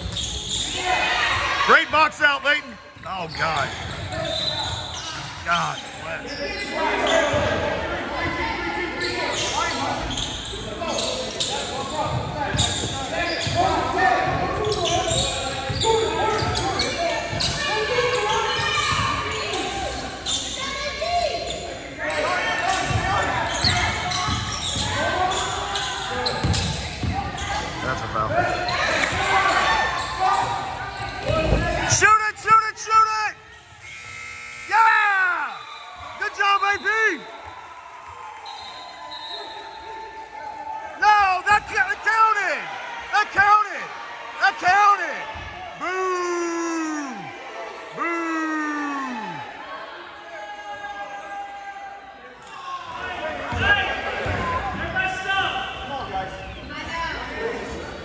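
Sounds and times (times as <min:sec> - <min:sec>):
sharp squeaks: 0:00.0 - 0:00.8
voices echoing in a hall: 0:00.0 - 0:58.0.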